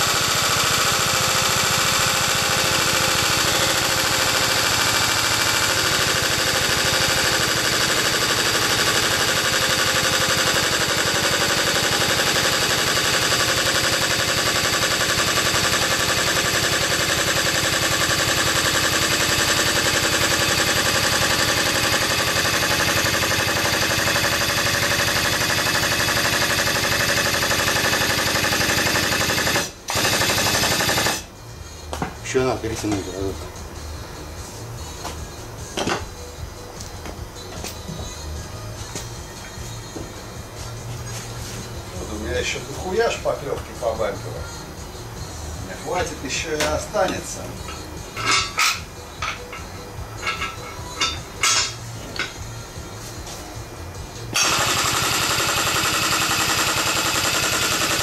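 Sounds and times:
hydraulic pump chattering: 0:00.0 - 0:31.3, 0:54.3 - 0:58.0.

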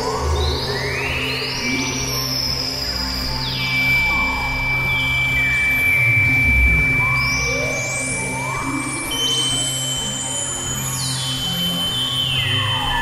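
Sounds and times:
synthesizer drone music: 0:04.2 - 0:08.8.

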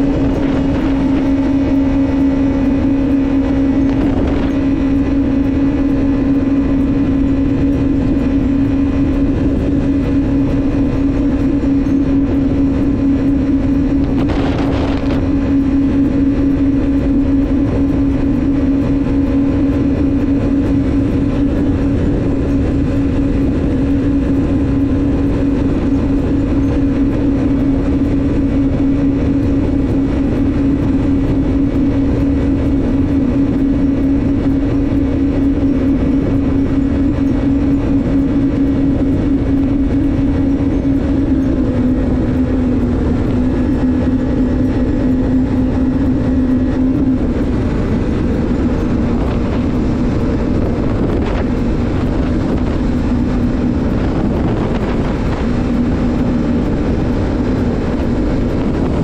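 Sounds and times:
jet ski engine droning: 0:00.0 - 0:59.0.

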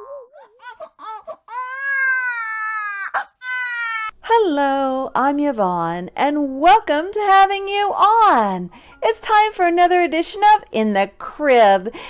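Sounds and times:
infant crying: 0:00.0 - 0:04.2.

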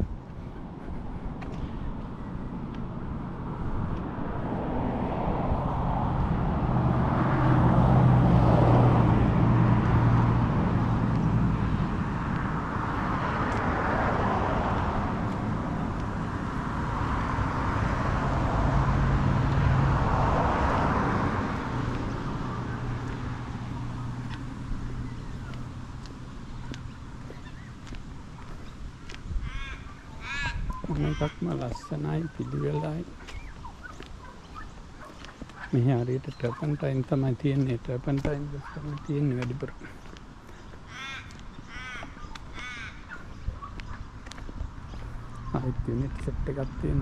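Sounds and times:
cars passing: 0:00.0 - 0:47.0.

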